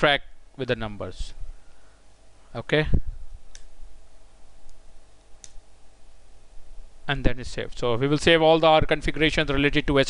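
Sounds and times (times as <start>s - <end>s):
computer mouse clicks: 4.7s - 5.6s.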